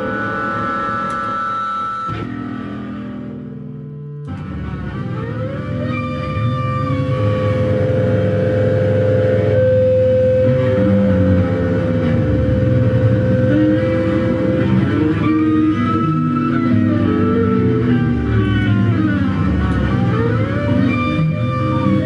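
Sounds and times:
heavy low drone: 4.4 - 22.0.

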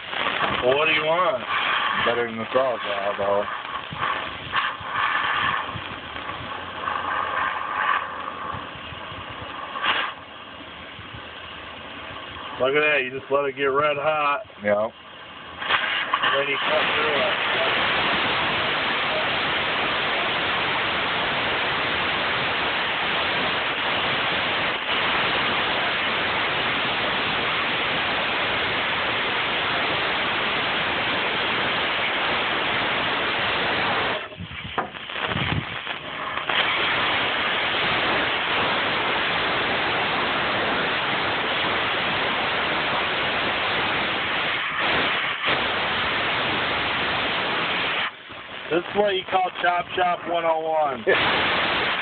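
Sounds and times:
cutting torch flame hissing: 0.0 - 52.0.

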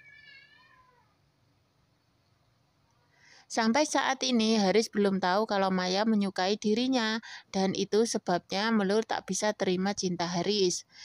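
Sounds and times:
high-pitched cry sliding down: 0.0 - 1.0.

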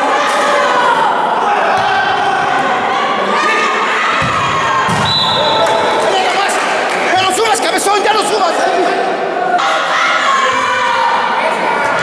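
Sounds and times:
spectators shouting and chatting: 0.0 - 12.0.

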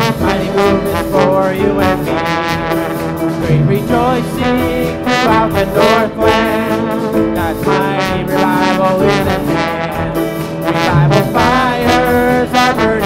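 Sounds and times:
drum kit: 0.0 - 13.0
held melody notes: 0.0 - 13.0
piano: 0.0 - 13.0.

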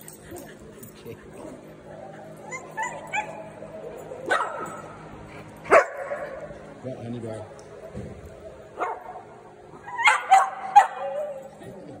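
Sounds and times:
small dogs barking: 2.4 - 4.9, 9.9 - 11.4.

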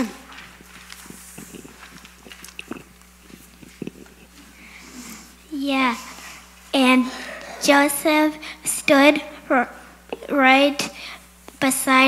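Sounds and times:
paper sheets rustling: 0.0 - 3.6.

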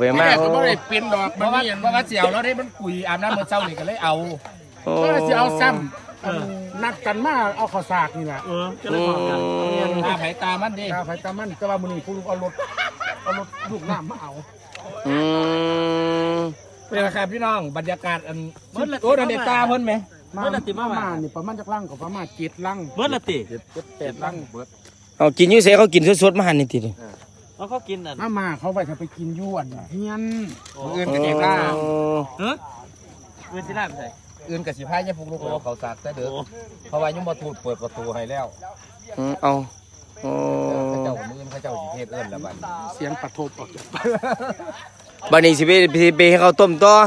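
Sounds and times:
people talking: 0.0 - 24.6, 25.2 - 47.0
crickets trilling: 0.0 - 47.0.

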